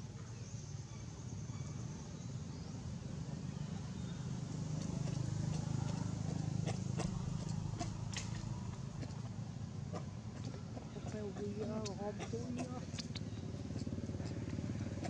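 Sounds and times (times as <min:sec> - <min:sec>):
low motor rumble: 0:00.0 - 0:15.0.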